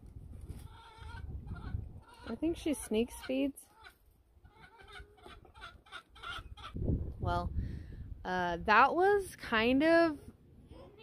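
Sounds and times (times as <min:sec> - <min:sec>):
chickens clucking: 0:00.5 - 0:06.8.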